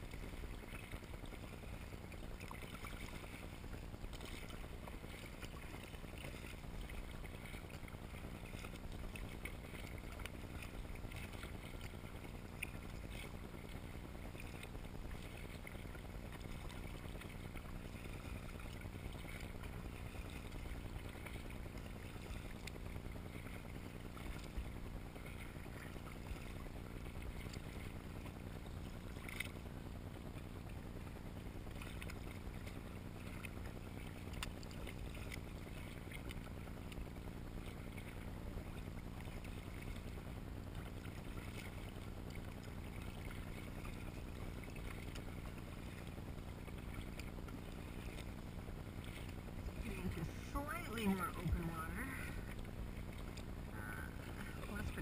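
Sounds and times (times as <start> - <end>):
water splashing against kayak: 0.0 - 55.0.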